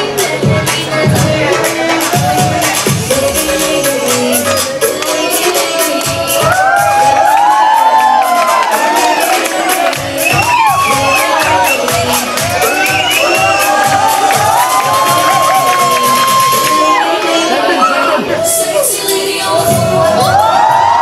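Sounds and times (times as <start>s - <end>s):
loud dance music: 0.0s - 21.0s
audience cheering and screaming: 4.5s - 21.0s.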